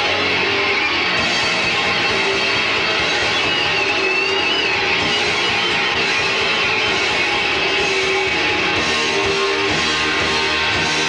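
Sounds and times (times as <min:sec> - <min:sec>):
guitar note bending: 0:00.0 - 0:11.0
metal band playing live: 0:00.0 - 0:11.0.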